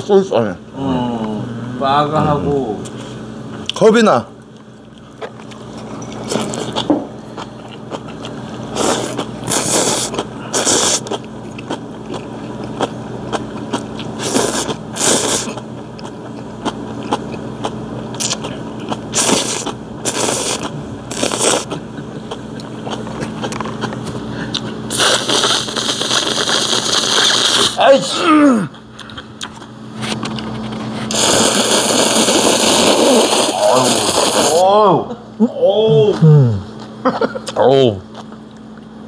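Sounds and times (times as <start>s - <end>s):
chewing: 4.4s - 27.7s, 28.7s - 31.2s
man slurping noodles: 8.7s - 11.2s, 14.1s - 15.6s, 19.1s - 21.9s, 24.9s - 27.8s, 31.1s - 34.7s.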